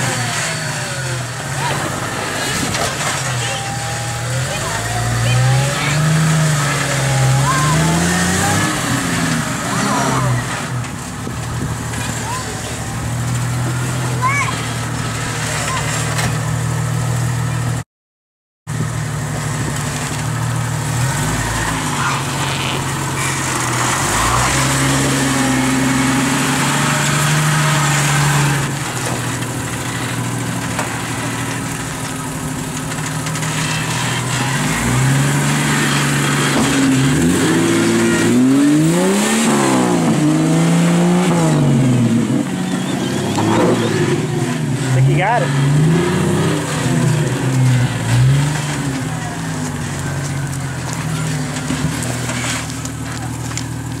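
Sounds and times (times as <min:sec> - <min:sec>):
engine revving at low speed: 0:00.0 - 0:17.8, 0:18.7 - 0:54.0.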